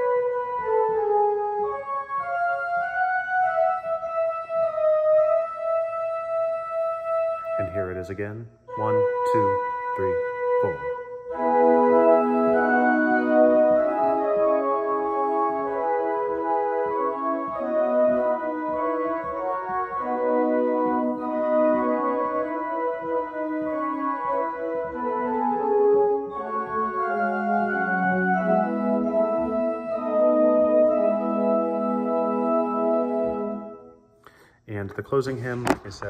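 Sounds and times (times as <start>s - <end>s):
church organ playing: 0.0s - 34.1s.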